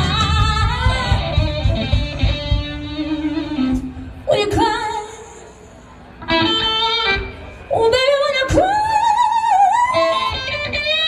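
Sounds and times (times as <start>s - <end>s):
woman singing with vibrato: 0.0s - 1.8s, 2.9s - 5.6s, 7.7s - 11.0s
blues band playing: 0.0s - 8.7s, 9.8s - 11.0s.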